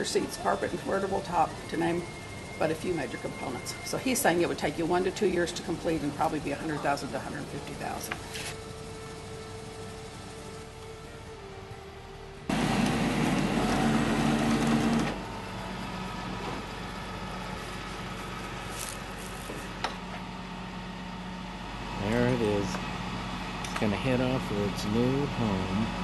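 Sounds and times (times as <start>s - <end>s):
truck engine and winch whirring: 0.0s - 26.0s.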